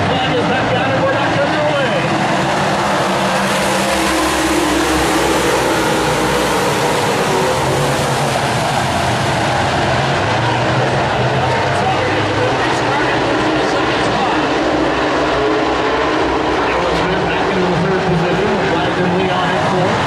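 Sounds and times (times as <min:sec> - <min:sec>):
race car engines running hard: 0:00.0 - 0:20.0.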